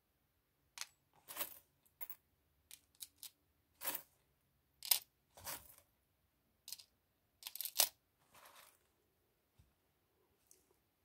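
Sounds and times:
soft rustles: 0:08.2 - 0:09.0.

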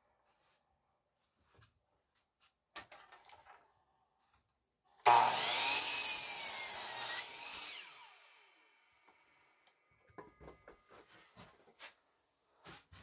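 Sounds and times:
miter saw cutting wood: 0:05.0 - 0:09.4
saw blade winding down: 0:05.1 - 0:09.3.

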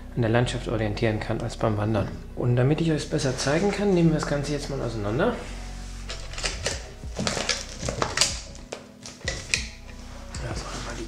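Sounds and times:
plastic sleeve crinkling: 0:06.0 - 0:11.0
metal clipboard clips clicking: 0:06.1 - 0:10.0.

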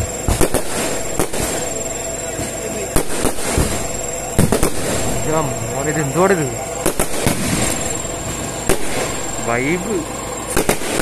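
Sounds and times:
firework crackle: 0:00.0 - 0:11.0
firework shells bursting: 0:00.0 - 0:11.0.

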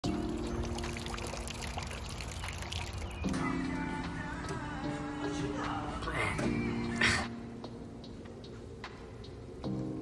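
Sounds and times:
background music: 0:00.0 - 0:10.0
water splashing from spigot: 0:00.2 - 0:03.2.

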